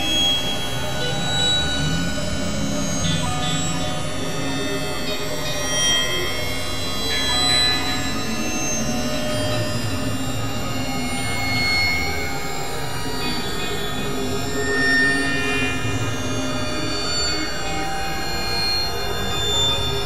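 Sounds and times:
experimental electronic drone music: 0:00.0 - 0:20.0.

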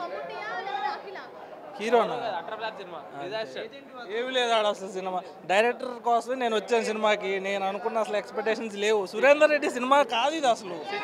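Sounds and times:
voices chattering: 0:00.0 - 0:11.0
man talking: 0:01.8 - 0:11.0.

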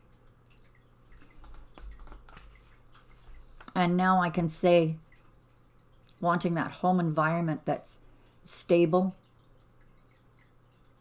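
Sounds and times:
cards clicking on wooden table: 0:01.4 - 0:02.5.

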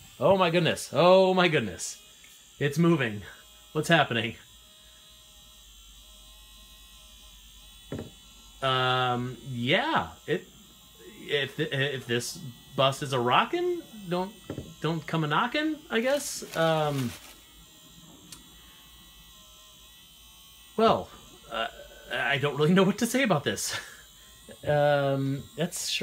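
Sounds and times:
small electric motor buzzing: 0:00.0 - 0:26.0.

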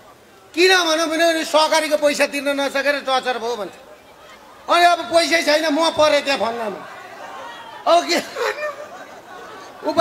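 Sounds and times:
man speaking into a microphone: 0:00.5 - 0:03.8, 0:04.7 - 0:06.9, 0:07.8 - 0:08.8, 0:09.8 - 0:10.0.

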